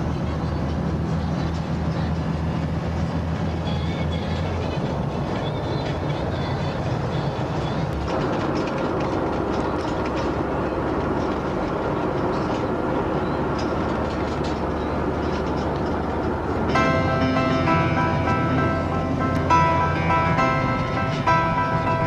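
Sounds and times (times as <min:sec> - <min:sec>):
road and engine noise: 0:00.0 - 0:22.0
light rattles and clicks: 0:04.1 - 0:17.8.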